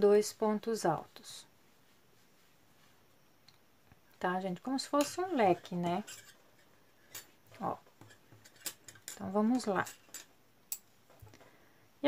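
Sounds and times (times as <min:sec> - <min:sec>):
faint handling of fabric: 0:00.9 - 0:03.4.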